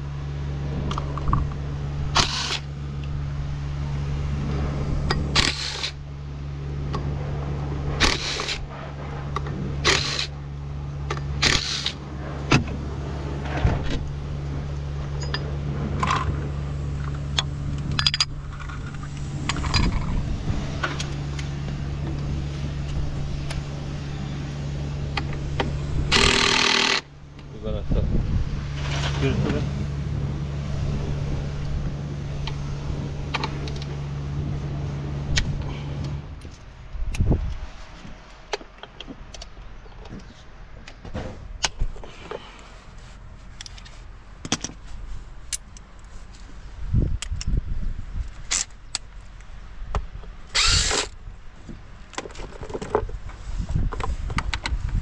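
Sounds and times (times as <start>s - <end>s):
steady low hum: 0.0s - 55.0s
cordless power tool bursts: 2.1s - 2.7s, 5.3s - 6.0s, 8.0s - 8.7s, 9.8s - 10.3s, 11.4s - 12.0s, 26.1s - 27.1s, 50.5s - 51.2s
tools clicking and knocking: 43.6s - 44.8s.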